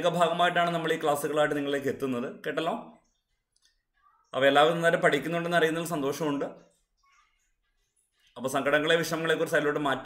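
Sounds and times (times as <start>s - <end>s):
man speaking: 0.0s - 3.1s, 4.3s - 6.7s, 8.4s - 10.0s.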